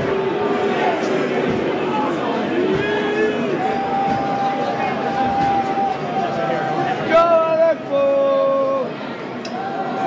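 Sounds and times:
crowd din: 0:00.0 - 0:10.0.

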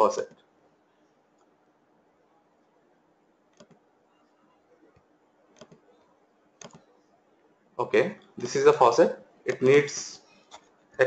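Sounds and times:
computer mouse clicks: 0:03.5 - 0:03.8, 0:05.0 - 0:05.9, 0:06.6 - 0:06.9.

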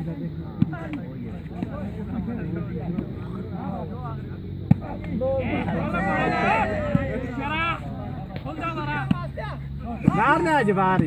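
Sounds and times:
men calling and talking: 0:00.0 - 0:11.0
hand slapping volleyball: 0:00.6 - 0:01.9, 0:04.7 - 0:05.8, 0:08.3 - 0:09.3, 0:09.9 - 0:11.0.

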